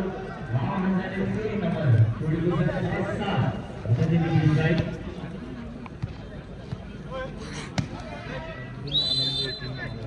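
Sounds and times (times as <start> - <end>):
shrill referee's whistle: 8.9 - 10.0.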